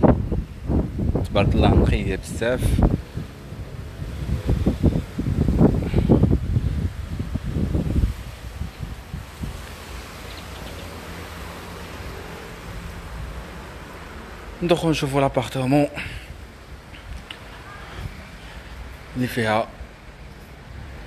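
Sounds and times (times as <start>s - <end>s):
wind buffeting microphone: 0.0s - 14.4s.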